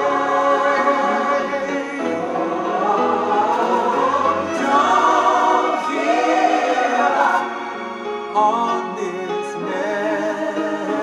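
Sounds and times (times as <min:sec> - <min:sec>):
choir singing gospel song: 0:00.0 - 0:11.0.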